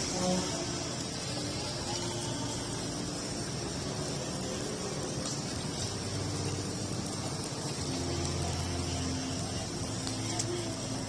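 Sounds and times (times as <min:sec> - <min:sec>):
low traffic rumble: 0:00.0 - 0:11.0
rice paper crackling on a grill: 0:00.0 - 0:11.0.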